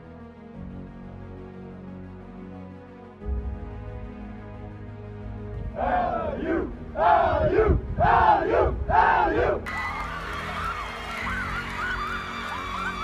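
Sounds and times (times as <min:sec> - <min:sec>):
team shouting a chant in unison: 0:05.7 - 0:09.6.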